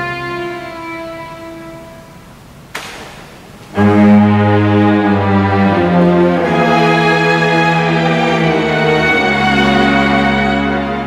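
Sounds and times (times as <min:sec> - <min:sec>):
string orchestra held chord: 0:03.7 - 0:11.0.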